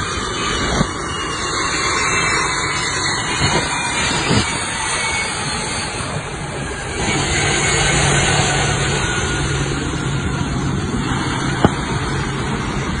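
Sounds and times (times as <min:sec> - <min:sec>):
jet turbofan engines running: 0:00.0 - 0:13.0.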